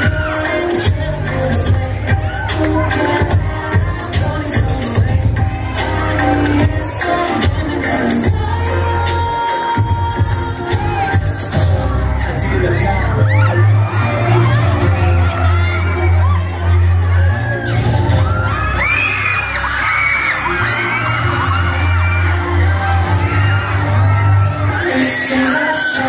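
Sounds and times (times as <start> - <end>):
crowd screaming and shouting: 0.0 - 26.0
pop dance music with heavy bass: 0.0 - 26.0.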